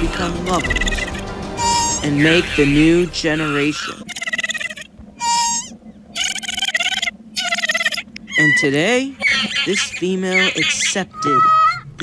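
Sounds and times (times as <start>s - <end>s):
creature call sound effects: 0.1s - 2.6s, 3.4s - 11.9s.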